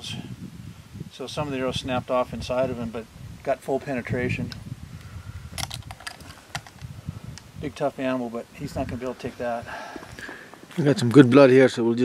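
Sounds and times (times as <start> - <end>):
handling clicks and rustles: 5.5 - 7.5.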